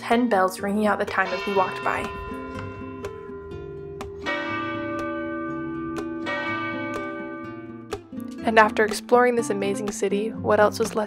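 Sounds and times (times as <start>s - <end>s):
tower bells ringing: 1.1s - 8.4s.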